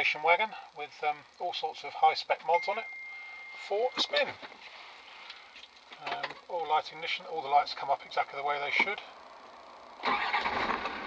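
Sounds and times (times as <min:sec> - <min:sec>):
diesel engine starting and running: 0:08.8 - 0:11.0.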